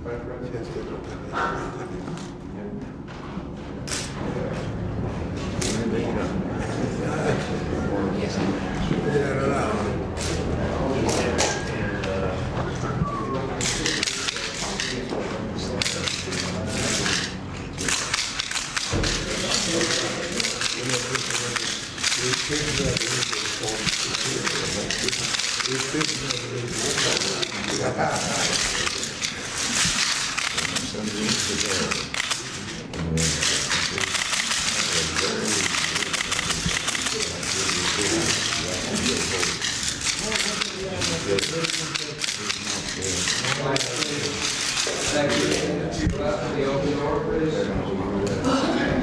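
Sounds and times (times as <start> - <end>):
murmur of voices: 0.0 - 49.0
press cameras clicking: 13.6 - 45.8.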